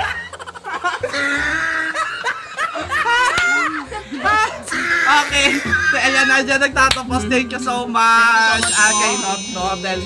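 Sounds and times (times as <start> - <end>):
high-pitched squeal of laughter: 0.0 - 6.3
people laughing hard: 0.0 - 6.5.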